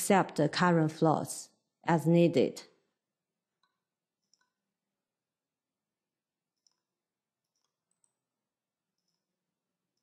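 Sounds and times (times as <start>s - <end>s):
computer mouse clicks: 3.6s - 4.7s, 6.5s - 8.3s, 8.9s - 10.0s.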